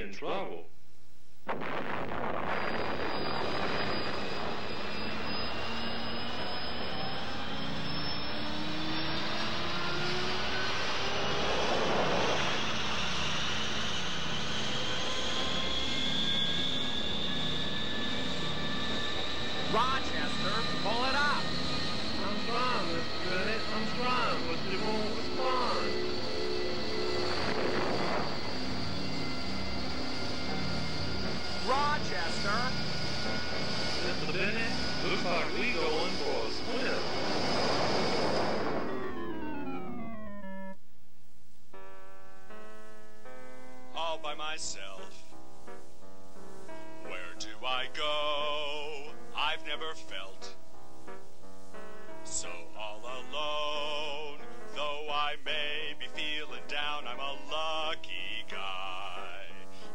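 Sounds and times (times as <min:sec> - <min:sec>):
aircraft engine drone with whine: 0:01.5 - 0:40.8, 0:42.5 - 0:59.9
whooshing swell: 0:17.4 - 0:40.6.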